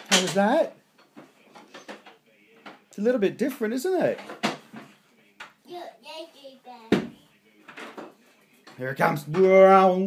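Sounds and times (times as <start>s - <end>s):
sharp clicks and knocks: 0.0s - 0.4s
child's voice: 5.7s - 7.3s.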